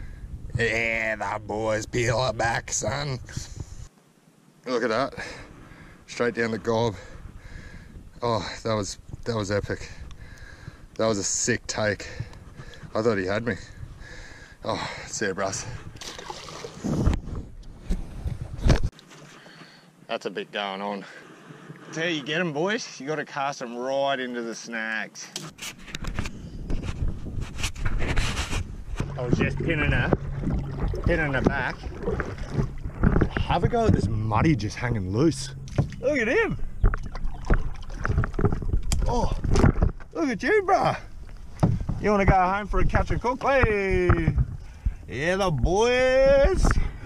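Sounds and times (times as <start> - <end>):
wind buffeting microphone: 0.0 - 3.9, 6.4 - 11.0, 11.6 - 14.6, 15.5 - 18.9, 25.8 - 47.0
knocks and rustles in a kayak: 15.7 - 19.8, 25.4 - 40.2, 41.1 - 47.0
dull low thuds: 26.6 - 40.2, 41.1 - 45.1
loud bump: 28.8 - 38.8.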